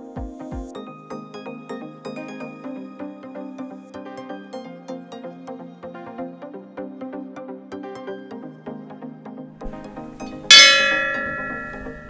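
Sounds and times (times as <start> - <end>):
background music: 0.0 - 12.0
metal bell ringing: 9.8 - 12.0.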